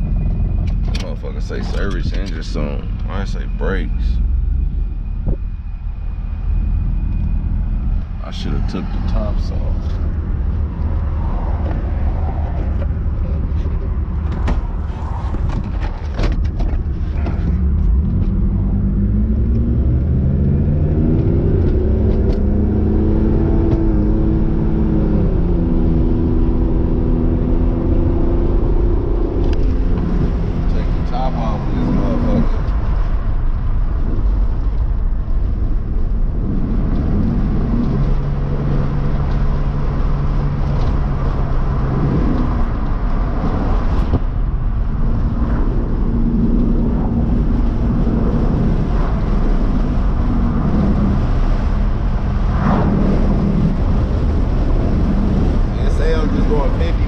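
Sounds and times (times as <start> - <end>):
car engine accelerating: 0.0 - 57.0
road and wind noise: 0.0 - 57.0.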